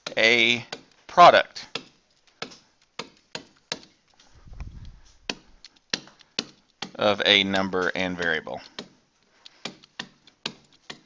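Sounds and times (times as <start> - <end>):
stylus tapping and clicking: 0.0 - 11.0
faint low rumble: 4.3 - 5.2.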